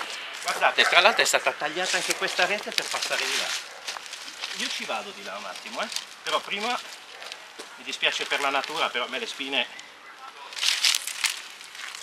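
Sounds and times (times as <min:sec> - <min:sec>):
bramble stems crackling and snapping: 0:01.9 - 0:07.6, 0:08.2 - 0:08.9, 0:10.5 - 0:12.0.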